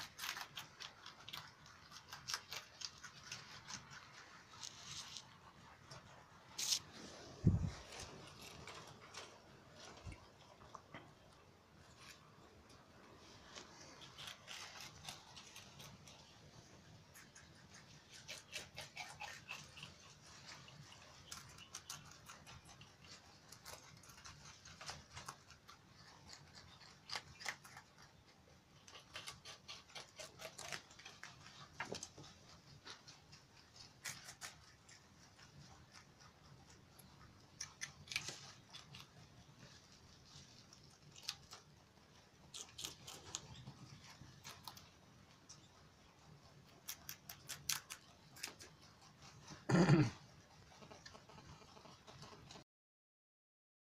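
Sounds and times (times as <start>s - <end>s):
rabbits chewing greens: 0.0s - 52.6s
leaves rustling: 6.5s - 10.2s.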